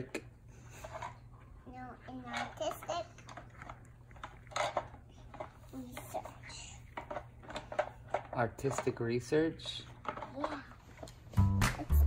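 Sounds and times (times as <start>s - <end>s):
small child's voice: 1.6s - 3.3s, 5.1s - 6.9s, 10.2s - 11.0s.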